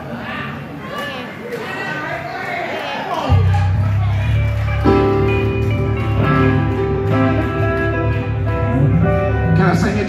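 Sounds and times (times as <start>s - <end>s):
electric guitar: 3.3s - 10.0s
keyboard chords: 3.3s - 10.0s
steady bass: 3.3s - 10.0s.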